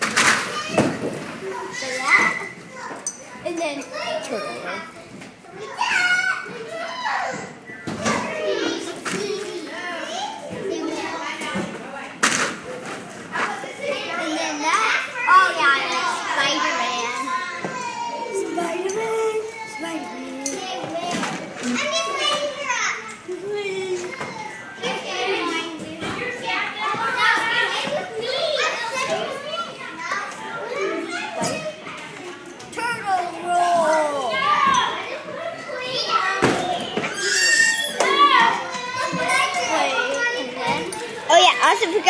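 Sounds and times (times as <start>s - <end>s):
children shouting and squealing: 0.4s - 11.6s, 13.4s - 42.0s.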